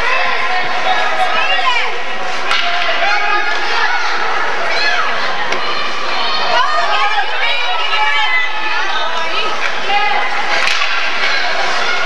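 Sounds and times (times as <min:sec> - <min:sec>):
spectators' indistinct voices: 0:00.0 - 0:12.0.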